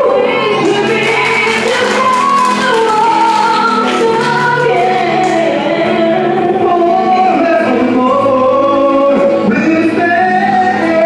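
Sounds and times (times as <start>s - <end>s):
girl singing into a microphone: 0.0s - 6.7s
accompanying music: 0.0s - 11.0s.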